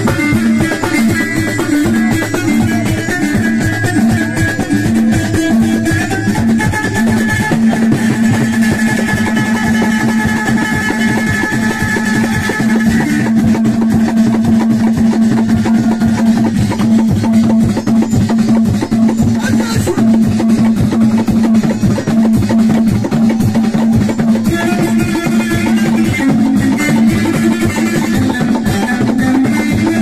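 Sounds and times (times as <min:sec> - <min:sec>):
fast hand-drum rhythm: 0:00.0 - 0:30.0.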